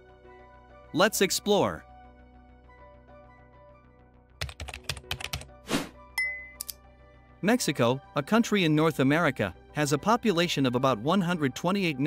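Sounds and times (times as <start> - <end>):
faint background music: 0.0 - 3.8, 4.4 - 12.0
keyboard typing: 4.4 - 5.5.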